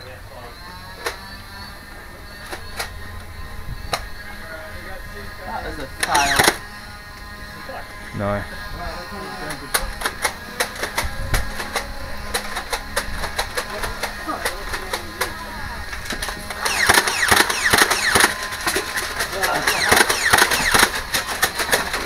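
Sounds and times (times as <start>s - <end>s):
sharp clicks and knocks: 16.0s - 22.0s.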